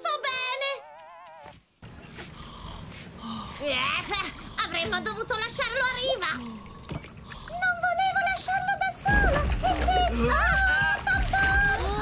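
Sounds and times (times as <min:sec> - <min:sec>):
sea and water noise: 0:02.9 - 0:12.0.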